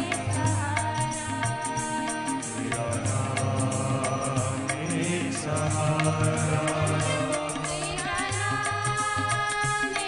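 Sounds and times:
harmonium notes: 0.0s - 10.0s
tabla and octopad beat: 0.0s - 10.0s.

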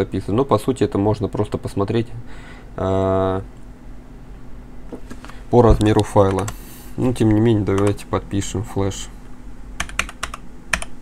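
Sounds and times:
typing on computer keyboard: 7.7s - 8.0s, 9.8s - 11.0s.

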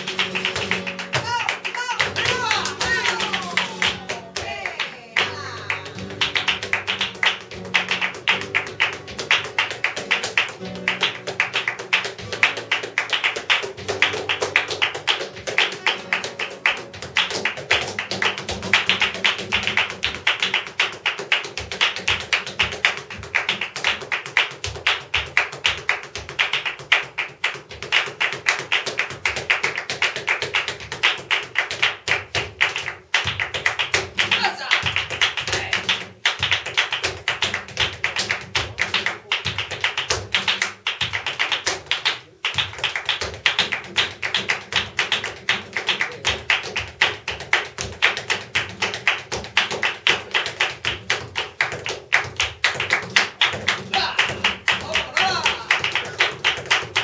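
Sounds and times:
flamenco guitar: 0.0s - 57.0s
rhythmic hand-clapping: 0.0s - 57.0s.

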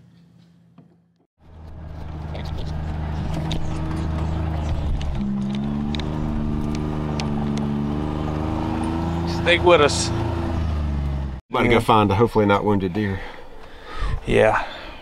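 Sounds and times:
vehicle engine accelerating: 1.4s - 11.4s.

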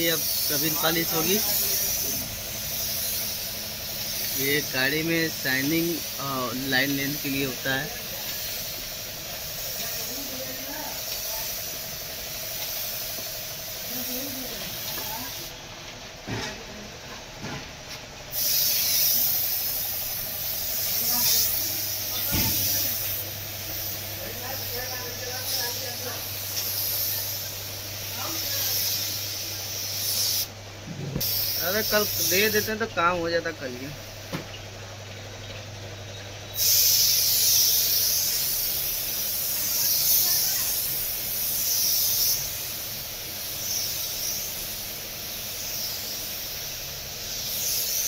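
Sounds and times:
spray gun hissing: 0.0s - 15.6s, 18.3s - 30.6s, 31.2s - 34.5s, 35.9s - 48.0s
steady low hum: 0.0s - 48.0s.

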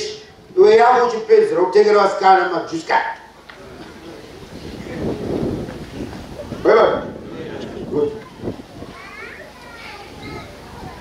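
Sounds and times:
faint children's chatter: 7.2s - 11.0s.

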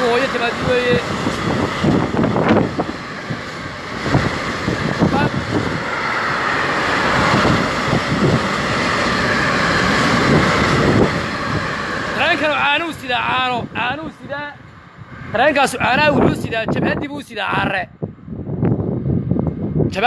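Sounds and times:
freight train passing: 0.0s - 20.0s
wind buffeting microphone: 0.0s - 20.0s.

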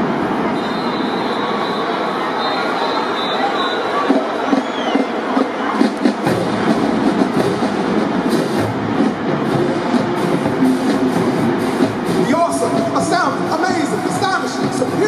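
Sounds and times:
marching band playing: 0.0s - 15.0s
deep drums: 5.3s - 15.0s.

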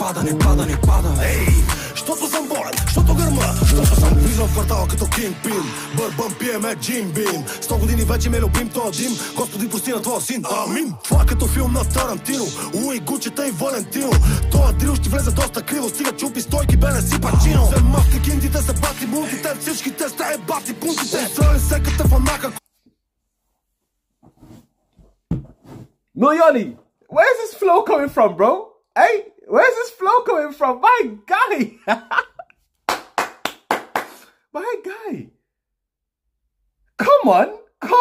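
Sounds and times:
fast rapping over a drill beat: 0.0s - 22.6s
deep bass notes: 0.4s - 1.8s, 2.8s - 5.2s, 7.7s - 8.6s, 11.2s - 12.0s, 14.2s - 15.5s, 16.5s - 18.9s.

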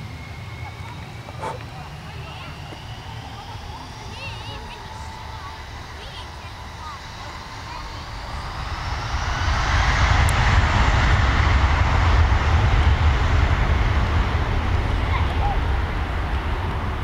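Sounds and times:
jet engines roaring: 0.0s - 17.0s.

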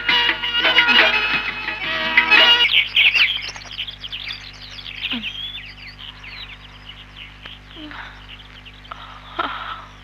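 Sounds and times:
small birds chirping: 1.7s - 10.0s.

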